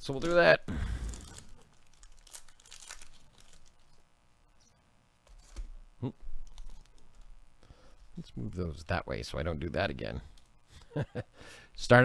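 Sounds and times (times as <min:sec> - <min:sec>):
foil wrapper tearing and crinkling: 0:00.2 - 0:04.0.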